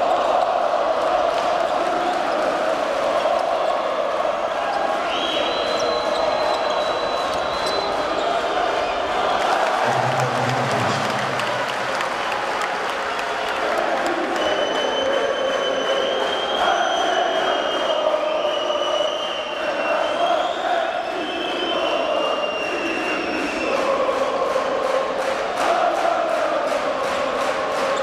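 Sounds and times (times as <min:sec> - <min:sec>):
arena crowd noise: 0:00.0 - 0:28.0
long high whistles: 0:05.0 - 0:08.0, 0:14.4 - 0:23.7.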